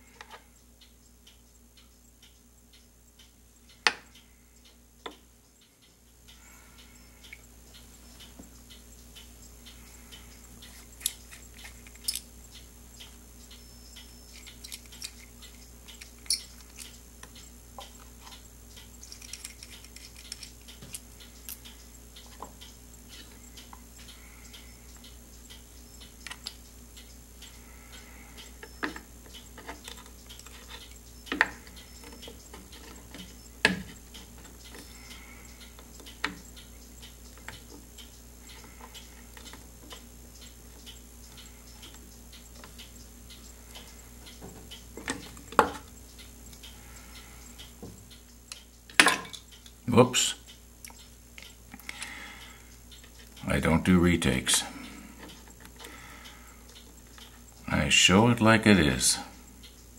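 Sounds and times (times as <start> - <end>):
steady low hum: 0.0 - 59.9
small metal parts clicking: 10.7 - 12.3, 14.3 - 22.4.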